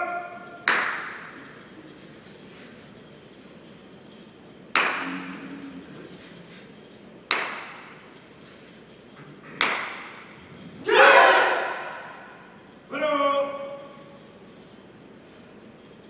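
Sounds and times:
sharp reverberant smacks: 0.2s - 1.4s, 4.8s - 5.4s, 7.3s - 8.1s, 9.5s - 10.4s.

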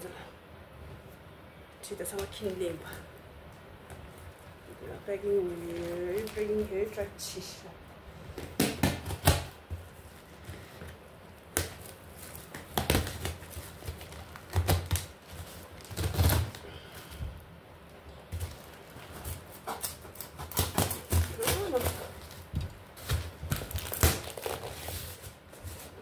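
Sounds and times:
cardboard scraping and tearing: 18.4s - 26.0s.

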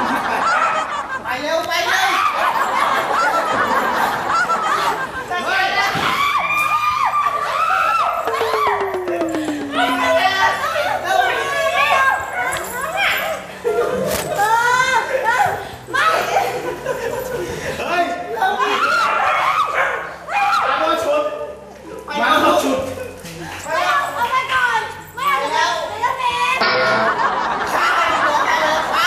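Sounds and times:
women screaming: 1.9s - 12.9s, 18.4s - 20.9s
people's voices: 8.3s - 19.1s.

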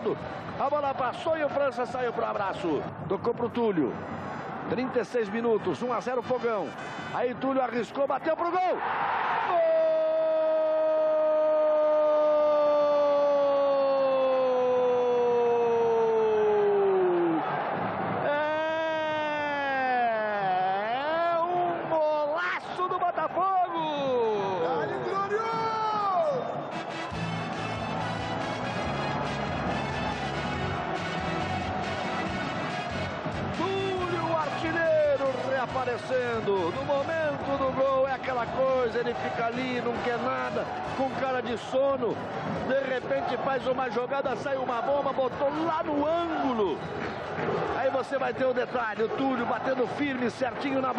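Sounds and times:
commentator shouting goal: 33.5s - 42.1s.

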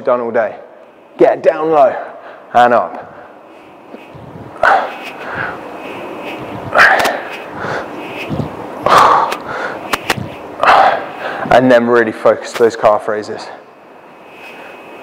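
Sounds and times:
man breathing hard: 3.1s - 11.5s.

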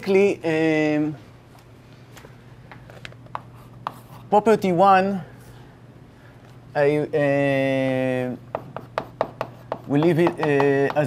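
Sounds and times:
chalk clicking and scraping: 3.3s - 4.3s, 8.5s - 11.0s.

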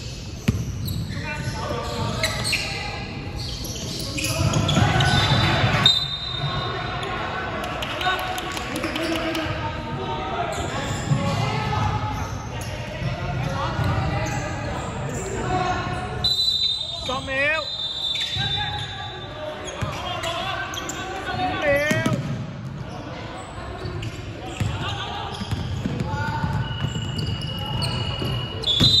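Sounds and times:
sneakers squeaking: 0.0s - 7.0s, 8.6s - 29.0s
players' voices echoing: 0.2s - 29.0s.

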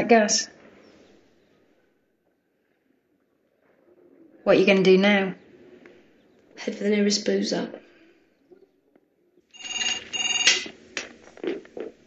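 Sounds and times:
telephone double ring: 9.6s - 10.8s.

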